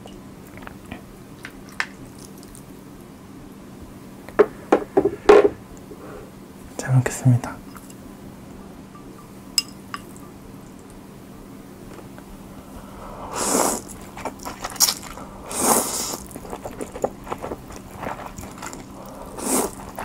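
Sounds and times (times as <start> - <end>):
ladle clinking against bowls: 9.0 - 10.4.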